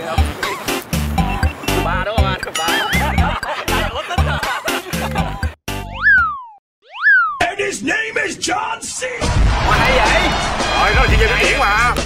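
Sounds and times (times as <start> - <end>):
background music: 0.0 - 6.2, 9.2 - 12.0
cartoon boing sound effect: 6.0 - 7.4.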